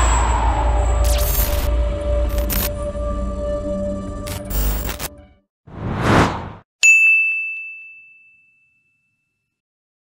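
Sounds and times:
short whoosh: 5.7 - 6.6
bright ding: 6.8 - 9.4.

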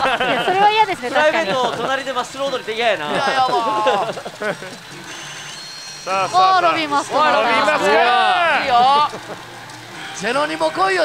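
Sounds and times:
pachinko parlour din: 0.0 - 11.0.

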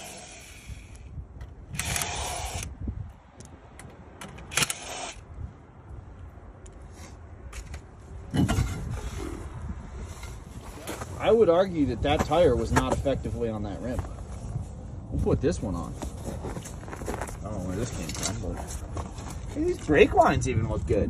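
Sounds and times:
impact wrench bursts: 0.0 - 1.0, 1.7 - 2.7, 4.4 - 5.2
metal clinks and scrapes: 16.3 - 20.0.

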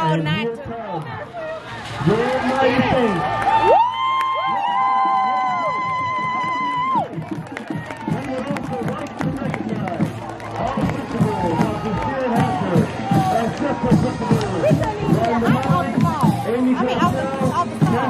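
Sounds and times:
babble of overlapping voices: 0.0 - 3.3, 5.9 - 18.0
crowd cheering and shouting: 0.0 - 18.0.

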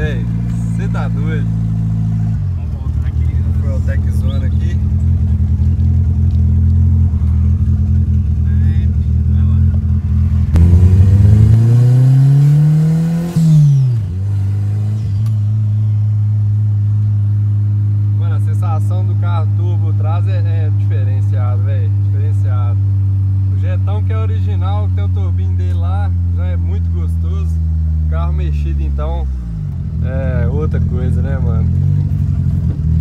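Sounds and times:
car engine revving under load: 0.0 - 33.0.

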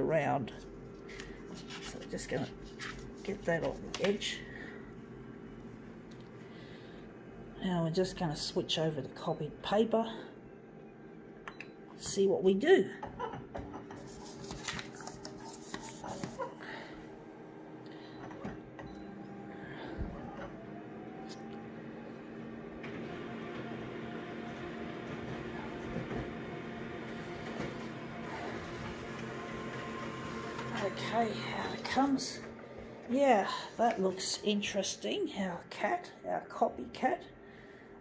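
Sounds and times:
photocopier humming: 0.6 - 7.5, 13.9 - 34.6.

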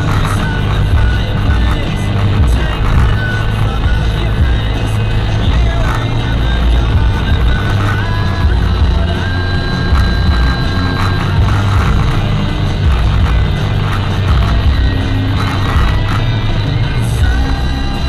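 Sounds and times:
low road rumble: 0.0 - 18.0
music on car radio: 0.0 - 18.0.

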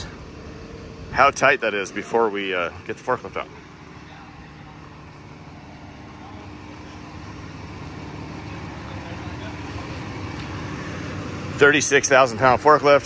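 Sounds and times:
forklift engine idling: 0.0 - 13.0.

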